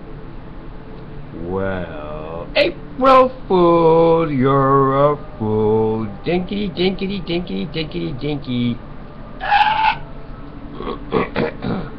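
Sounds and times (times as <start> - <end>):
man squealing: 9.4 - 10.0.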